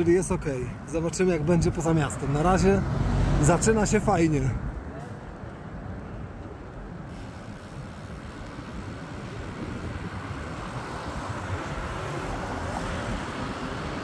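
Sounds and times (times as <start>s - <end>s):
car approaching: 0.0s - 14.0s
road and traffic noise: 0.0s - 14.0s.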